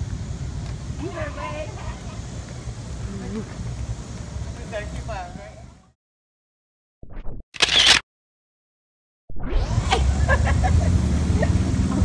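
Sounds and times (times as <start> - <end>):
steady low engine rumble: 0.0 - 5.9, 9.8 - 12.0.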